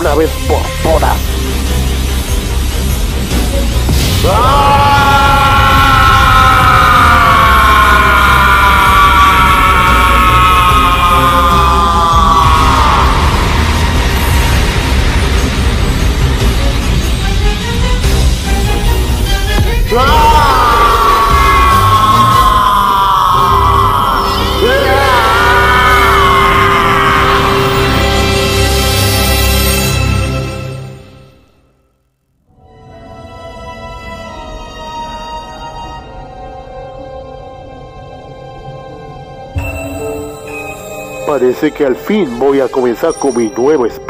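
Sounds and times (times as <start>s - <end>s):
background music: 0.0s - 44.0s
man's battle cry: 4.2s - 14.2s, 19.8s - 28.2s
person screaming: 4.2s - 14.3s, 19.9s - 28.1s.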